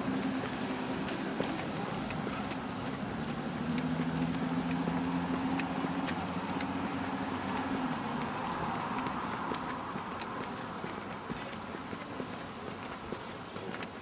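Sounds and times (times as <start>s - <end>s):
footsteps on pavement: 0.0s - 14.0s
passing vehicles rushing: 0.0s - 14.0s.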